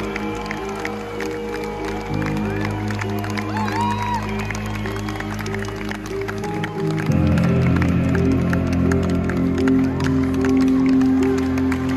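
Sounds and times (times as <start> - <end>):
held keyboard chords: 0.0 - 11.9.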